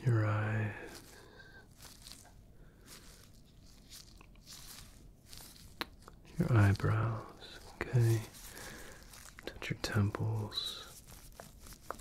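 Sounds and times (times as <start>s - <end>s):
rubber gloves rustling: 0.0s - 12.0s.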